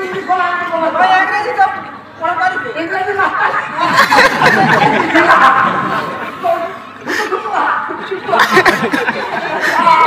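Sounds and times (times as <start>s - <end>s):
chuckling laughter: 3.8s - 6.2s, 8.3s - 10.0s.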